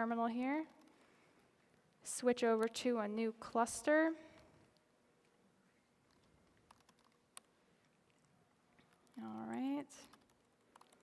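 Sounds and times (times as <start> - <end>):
laptop keyboard clicks: 6.1 - 7.5, 8.9 - 11.0.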